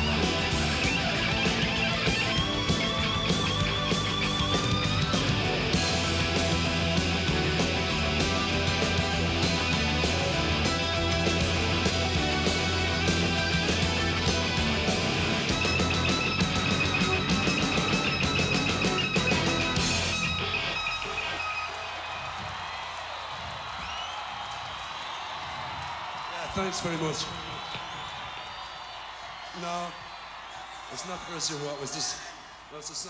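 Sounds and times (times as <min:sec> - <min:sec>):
live hard rock band: 0:00.0 - 0:22.6
crowd cheering and applauding: 0:00.0 - 0:33.0.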